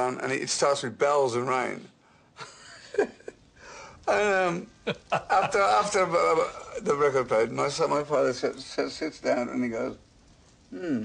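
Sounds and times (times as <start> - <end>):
man breathing: 3.6 - 4.0.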